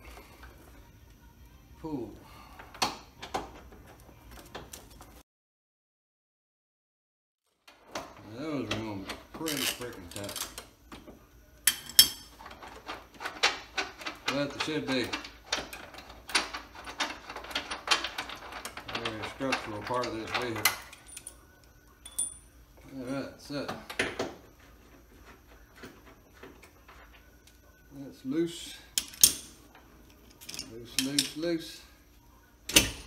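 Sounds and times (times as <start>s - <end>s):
metal tools clanking on metal: 11.6s - 21.4s, 22.0s - 23.0s, 30.2s - 31.7s.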